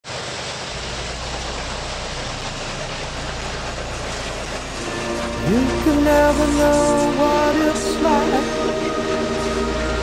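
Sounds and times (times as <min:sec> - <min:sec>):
low locomotive engine rumble: 0:00.5 - 0:10.0.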